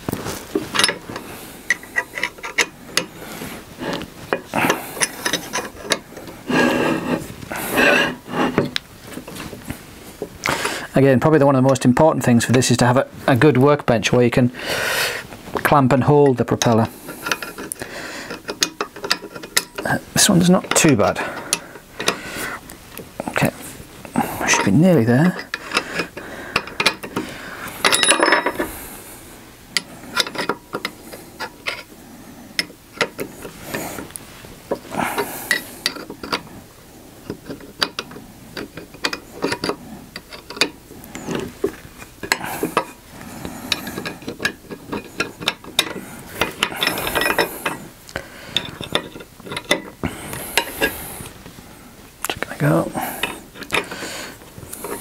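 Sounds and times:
rasping rub: 3.2 - 9.5
hand tool clicking on metal: 37.3 - 41.4.

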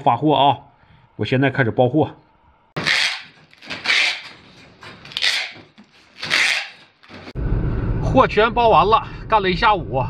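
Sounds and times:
plastic bags crinkling: 2.8 - 7.3.

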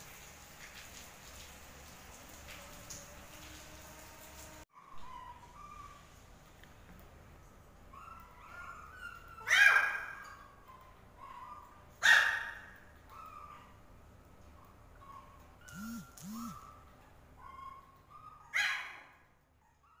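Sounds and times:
puppies yapping: 4.6 - 6.2, 7.8 - 13.8, 14.5 - 20.0.

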